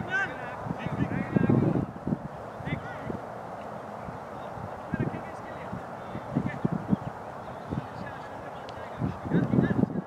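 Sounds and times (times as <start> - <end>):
distant voices calling: 0.0 - 10.0.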